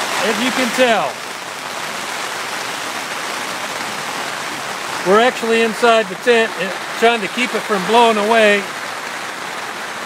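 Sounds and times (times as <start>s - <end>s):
rain beating on tent fabric: 0.0s - 10.0s.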